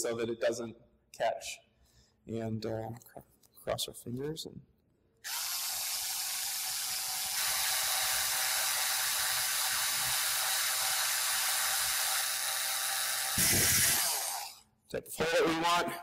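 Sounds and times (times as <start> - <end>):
cordless drill boring plastic pipe: 5.2 - 14.6.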